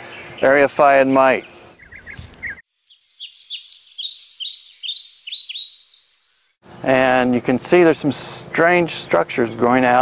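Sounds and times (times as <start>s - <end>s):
bird chirping: 0.0s - 7.5s.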